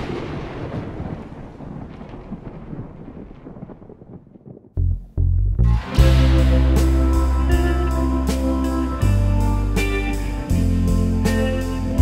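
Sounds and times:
scattered crackles: 0:00.0 - 0:04.8
deep thunder-like rumble: 0:00.0 - 0:05.3
low musical notes: 0:04.8 - 0:12.0.

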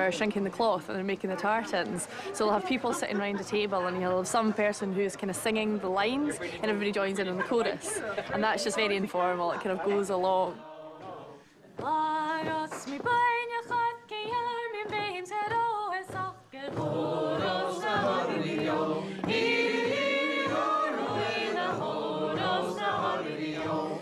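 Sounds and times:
group of voices singing chorus: 0:08.1 - 0:11.5, 0:16.6 - 0:24.0
single voice singing: 0:09.1 - 0:24.0.

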